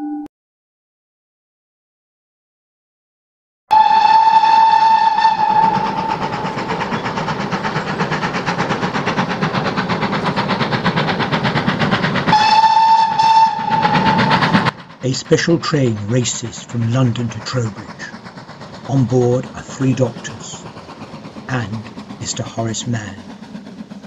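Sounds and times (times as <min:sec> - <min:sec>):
steam whistle blast: 0:03.7 - 0:06.6, 0:12.3 - 0:14.7
steam locomotive chuffing: 0:03.7 - 0:24.0.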